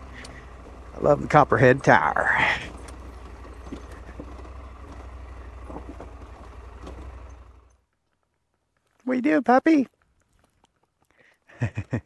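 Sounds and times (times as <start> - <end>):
motorcycle engine at low revs: 0.0 - 8.0.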